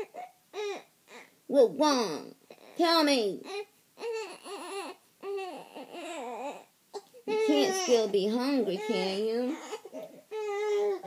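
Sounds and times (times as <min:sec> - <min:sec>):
baby fussing with high whines: 0:00.0 - 0:01.4, 0:02.5 - 0:11.0.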